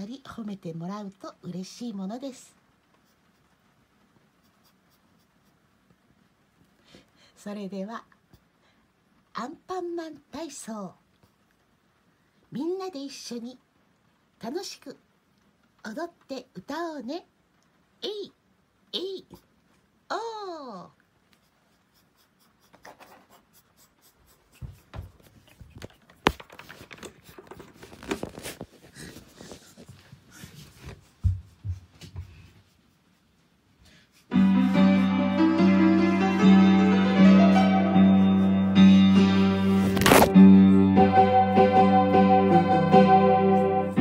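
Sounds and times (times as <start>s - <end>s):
plush toy scratches and rustles: 21.2s - 33.8s, 39.7s - 40.3s.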